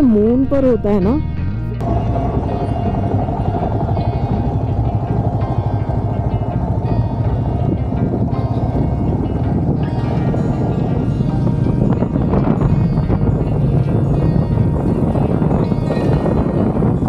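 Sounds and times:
background music: 0.0 - 17.0
motorcycle engine rumble: 0.0 - 17.0.

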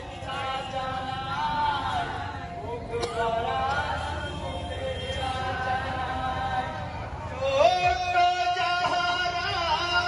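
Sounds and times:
amplified man singing folk song: 3.0 - 10.0.

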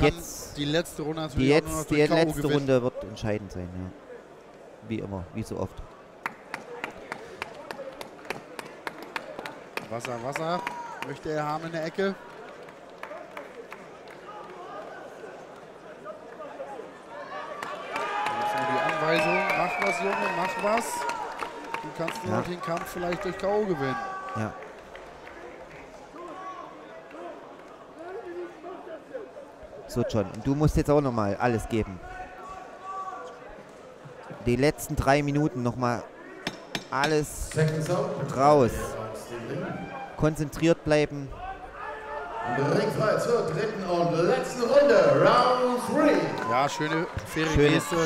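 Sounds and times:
man talking: 21.9 - 24.6, 36.9 - 41.3, 42.5 - 48.0.

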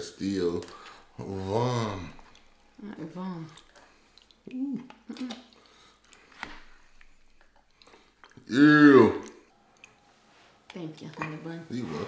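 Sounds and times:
wet squishing: 0.2 - 12.0.

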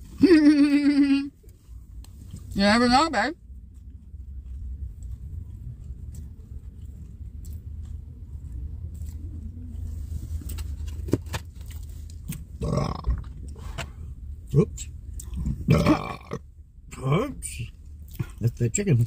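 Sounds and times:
throaty vocal sound: 12.6 - 13.3, 15.3 - 16.4.

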